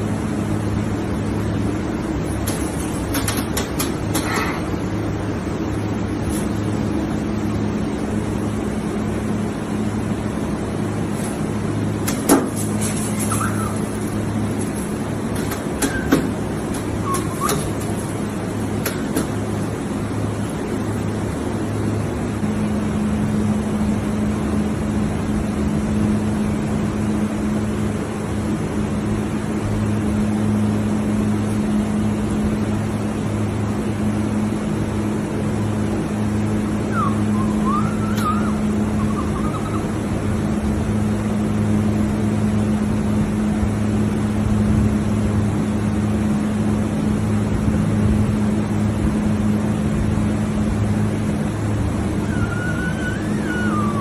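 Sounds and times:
steady mechanical hum: 0:00.0 - 0:54.0
wavering whistling chirp: 0:13.0 - 0:14.4, 0:15.8 - 0:17.9, 0:36.8 - 0:40.2, 0:52.1 - 0:54.0.

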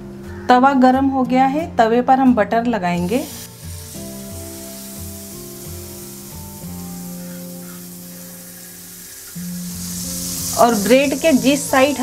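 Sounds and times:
faint background music: 0:00.0 - 0:12.0
butter sizzling on a griddle: 0:03.0 - 0:12.0.

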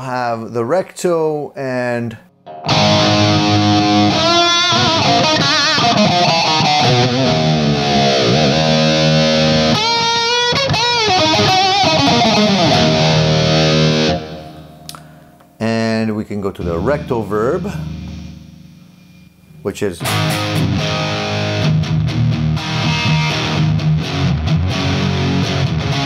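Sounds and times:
distorted electric guitar: 0:02.4 - 0:15.6, 0:16.6 - 0:26.0.

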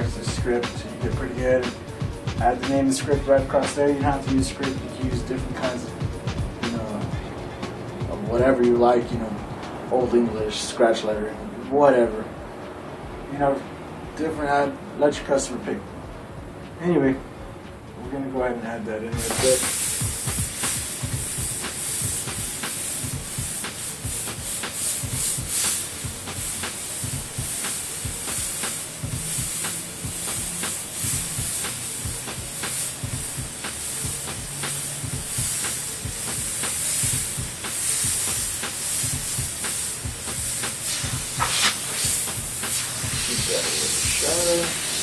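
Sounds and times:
airbrush hissing: 0:19.2 - 0:45.0.

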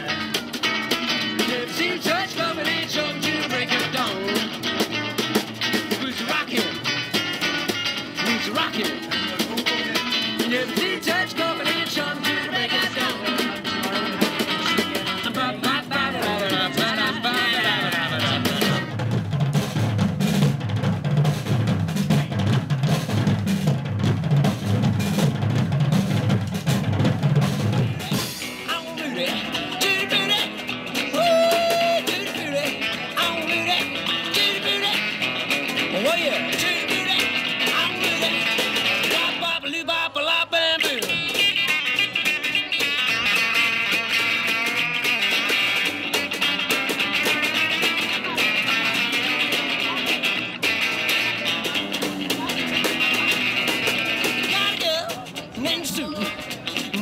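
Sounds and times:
upright double bass: 0:00.0 - 0:23.7
drum kit solo: 0:00.0 - 0:39.5, 0:40.8 - 0:57.0
electric guitar: 0:00.0 - 0:57.0
people singing: 0:01.1 - 0:04.8, 0:08.2 - 0:18.9, 0:28.0 - 0:41.3.

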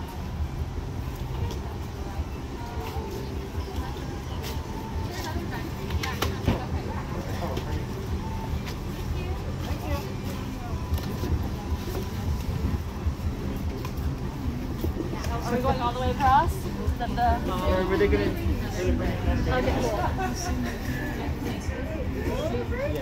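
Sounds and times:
people chattering: 0:00.0 - 0:23.0
street traffic rumble: 0:00.0 - 0:23.0.

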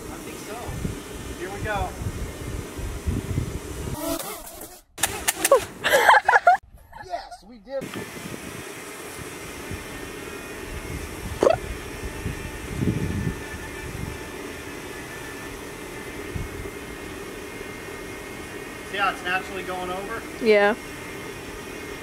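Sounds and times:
drone propellers humming: 0:07.8 - 0:22.0.

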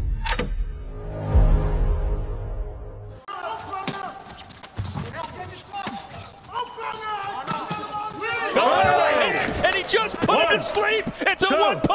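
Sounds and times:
crowd shouting and cheering: 0:03.2 - 0:04.5, 0:05.4 - 0:11.9.

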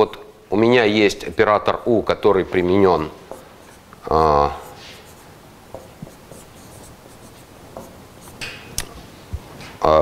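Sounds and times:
marker pen writing on whiteboard: 0:03.0 - 0:08.6.

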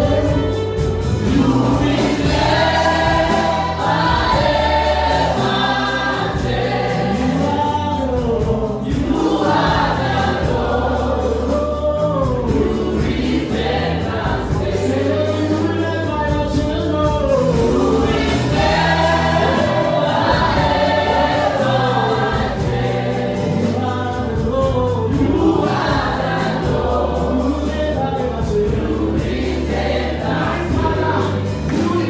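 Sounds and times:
group singing gospel song: 0:00.0 - 0:32.0
live band playing: 0:00.0 - 0:32.0.

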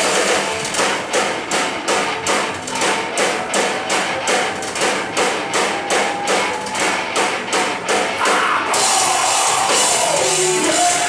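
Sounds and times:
drums and cymbals: 0:00.0 - 0:11.0
hard rock band playing live: 0:00.0 - 0:11.0.

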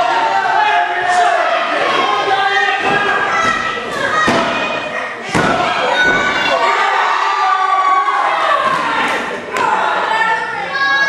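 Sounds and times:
voices shouting: 0:00.0 - 0:11.0.

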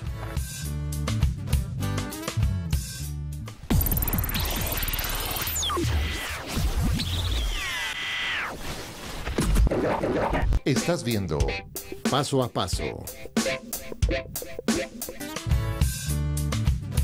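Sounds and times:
background music: 0:00.0 - 0:03.7, 0:10.5 - 0:17.0.

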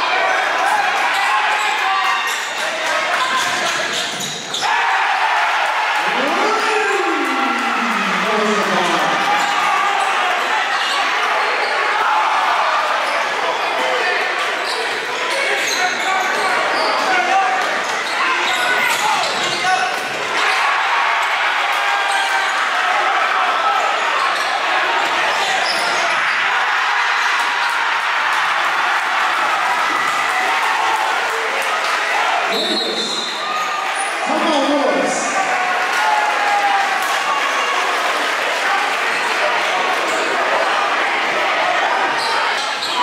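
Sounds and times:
crowd chatter and calls: 0:00.0 - 0:43.0.

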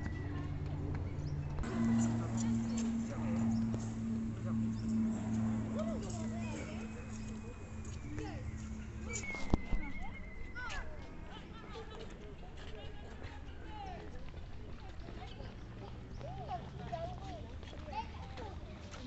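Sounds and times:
pulsing low hum: 0:00.0 - 0:11.4
birds chirping and whistling: 0:07.1 - 0:10.8.

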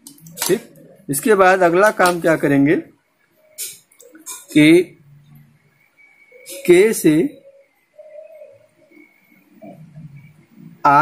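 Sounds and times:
person speaking: 0:00.1 - 0:02.9
faint high whine: 0:00.2 - 0:11.0
pigeon cooing: 0:03.4 - 0:10.8.

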